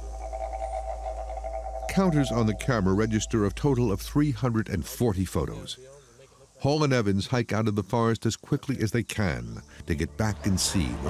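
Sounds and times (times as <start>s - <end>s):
low drone with held tones: 0.0s - 5.6s, 9.5s - 11.0s.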